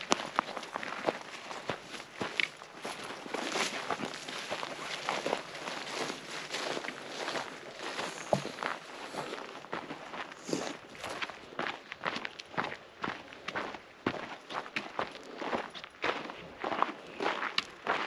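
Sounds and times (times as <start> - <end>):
footsteps crunching on gravel: 0.0 - 18.0.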